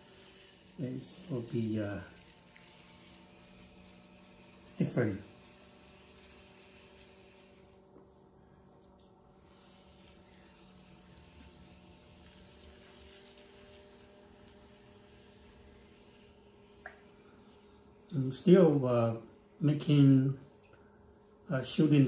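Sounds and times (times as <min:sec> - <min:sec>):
potter's wheel humming: 0:00.0 - 0:22.0.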